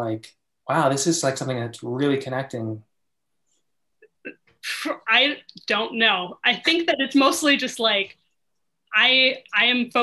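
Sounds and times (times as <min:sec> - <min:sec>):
woman speaking: 0:04.2 - 0:08.2, 0:08.9 - 0:10.0.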